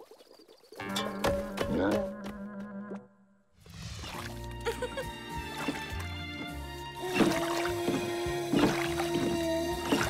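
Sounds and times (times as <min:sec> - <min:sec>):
oar strokes in water: 0:07.0 - 0:10.0.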